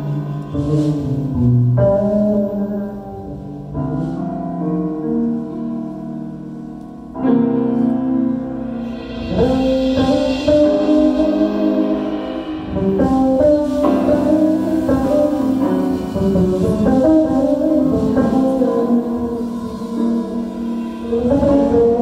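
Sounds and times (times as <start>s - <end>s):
piano: 0.0s - 22.0s
percussion hits: 8.7s - 22.0s.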